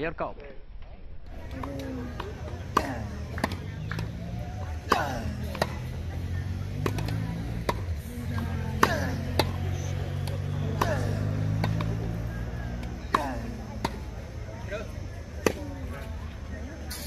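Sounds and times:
racket hitting tennis ball: 1.4s - 12.2s, 12.8s - 14.3s, 15.2s - 16.1s
tennis ball bouncing: 1.4s - 14.5s, 15.2s - 16.2s.

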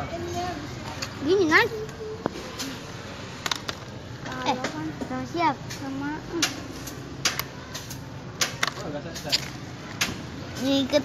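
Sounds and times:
plastic toy clicks and clacks: 3.4s - 4.8s, 6.4s - 10.9s.

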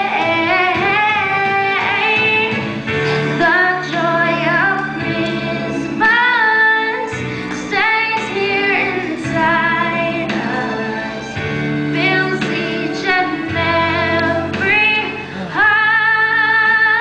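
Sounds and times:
children singing: 0.0s - 11.3s, 11.9s - 17.0s
instrumental accompaniment: 0.0s - 17.0s.

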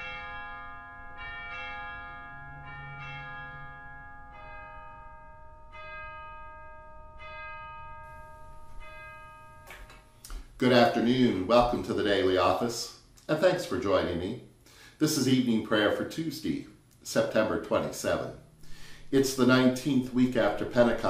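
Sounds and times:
church bells ringing: 0.0s - 12.4s, 18.2s - 21.0s.

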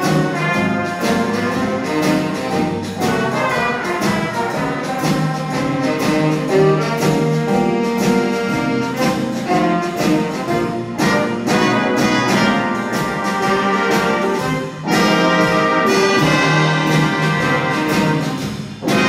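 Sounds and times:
jazz big band playing swing: 0.0s - 19.0s.

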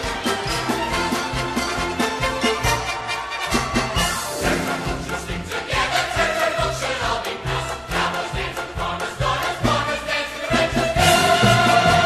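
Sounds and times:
orchestral music with bass beat: 0.0s - 12.0s.

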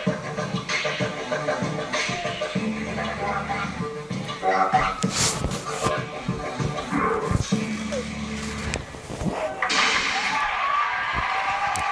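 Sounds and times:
television music and voices: 0.0s - 11.9s.

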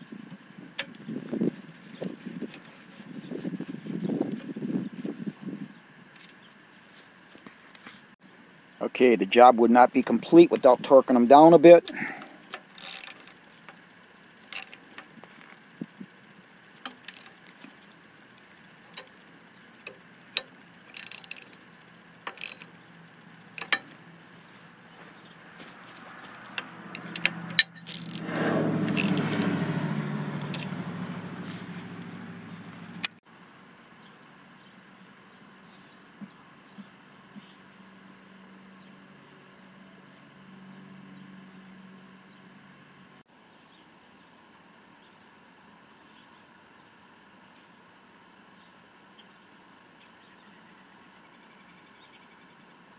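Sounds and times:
rushing rumble: 23.4s - 33.2s.

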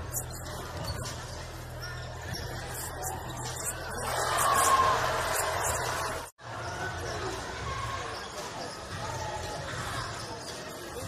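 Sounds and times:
crowd murmur and voices: 0.0s - 11.0s.

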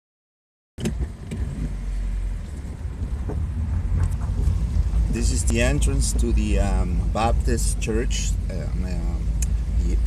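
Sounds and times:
truck rumbling on dirt street: 0.8s - 10.0s.

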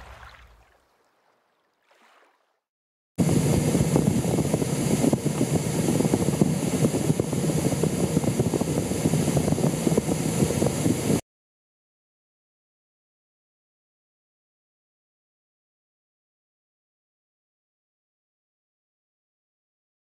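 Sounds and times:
storm wind buffeting microphone: 3.2s - 11.2s.

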